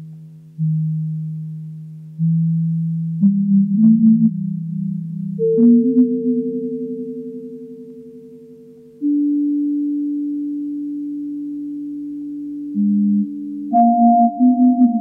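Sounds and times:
slow electronic sine tone music: 0.0 - 15.0.

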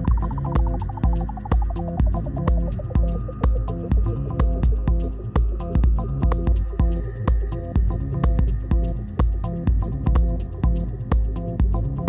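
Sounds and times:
minimal house music: 0.0 - 12.0.

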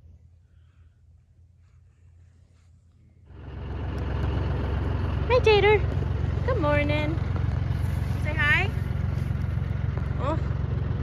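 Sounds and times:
faint low hum: 0.0 - 11.0
vehicle engine idling: 3.2 - 11.0.

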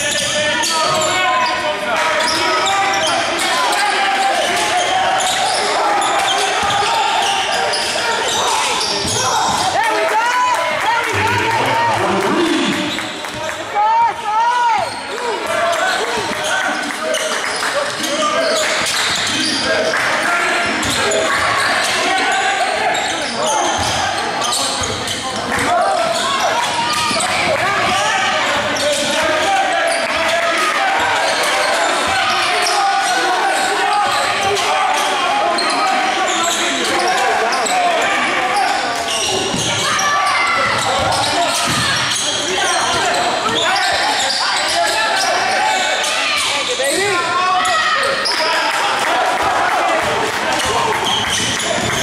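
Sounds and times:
sneakers squeaking: 0.0 - 9.8, 11.1 - 13.5, 14.7 - 48.6, 50.5 - 52.0
din of indistinct voices: 0.0 - 52.0.

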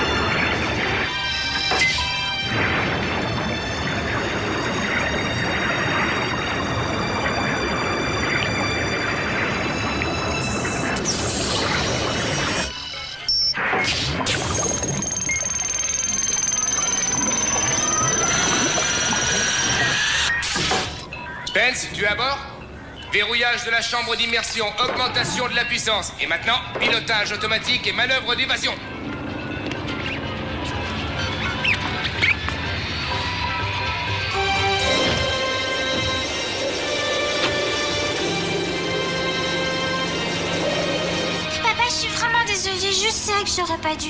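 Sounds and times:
dramatic action film score: 0.0 - 43.6
rising whistling tone: 14.6 - 20.4.

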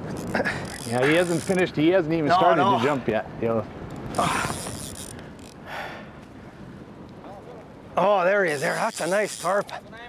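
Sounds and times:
fly reel drag clicking: 0.2 - 1.6, 4.1 - 5.6, 8.5 - 9.8.

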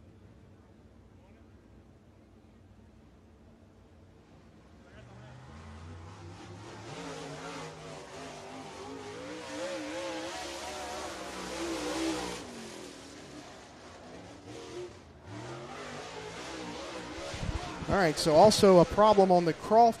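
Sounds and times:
race car engine passing: 4.8 - 20.0.

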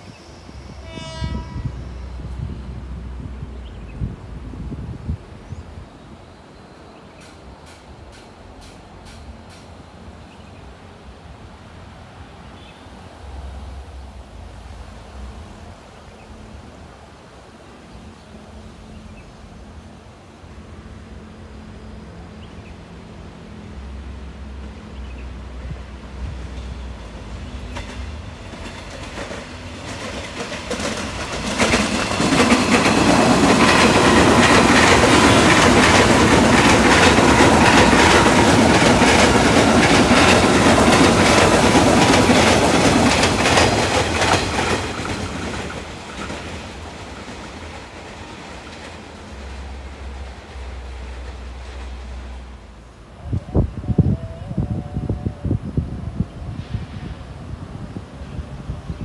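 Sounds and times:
train wheels clattering over rail joints: 27.6 - 49.6.

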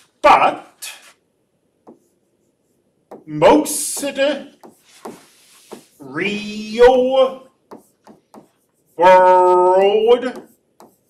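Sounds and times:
stylus scratching on tablet screen: 1.8 - 11.0.

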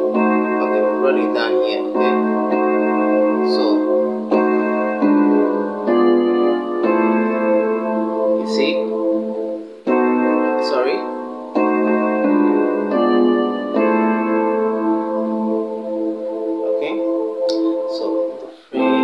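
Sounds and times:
keyboard piano chords: 0.0 - 19.0.

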